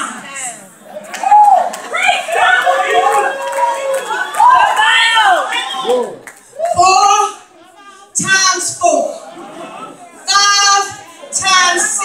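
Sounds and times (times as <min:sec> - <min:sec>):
woman calling out over microphone: 0:10.3 - 0:12.0.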